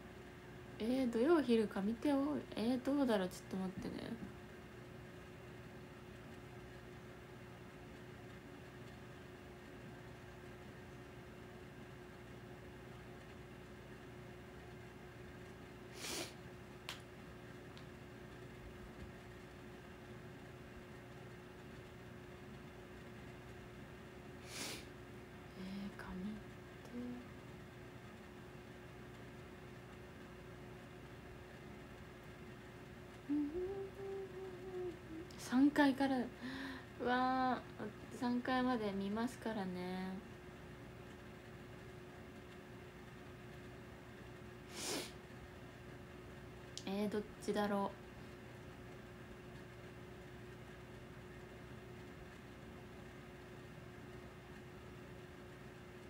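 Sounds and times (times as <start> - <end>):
constant low hum: 0.0 - 56.0
steady hiss: 3.1 - 39.5, 40.2 - 46.8
woman humming: 25.6 - 27.4, 33.2 - 35.9.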